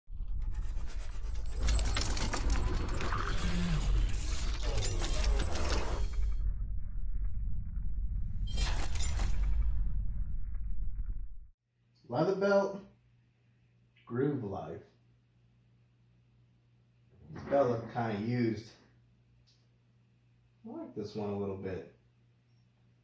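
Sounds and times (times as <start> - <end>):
deep bass rumble: 6.3 - 8.5.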